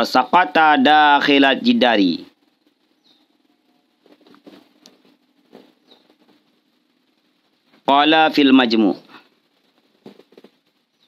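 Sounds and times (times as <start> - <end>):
faint small clicks and rustles: 2.5 - 7.9, 9.1 - 11.0.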